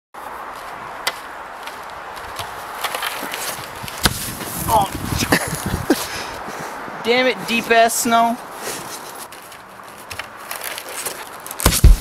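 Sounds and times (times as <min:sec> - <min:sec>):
steady outdoor hiss: 0:00.2 - 0:12.0
light clicks and scrapes: 0:08.6 - 0:11.6
snowboard knock on wooden deck: 0:11.7 - 0:12.0.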